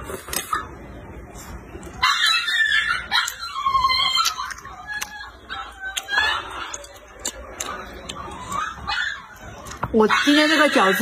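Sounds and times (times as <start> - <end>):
dog whining and yelping: 1.8 - 11.0.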